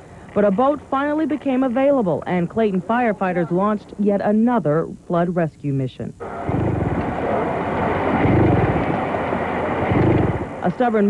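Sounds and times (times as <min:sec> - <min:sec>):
outboard motor running: 0:06.2 - 0:10.6.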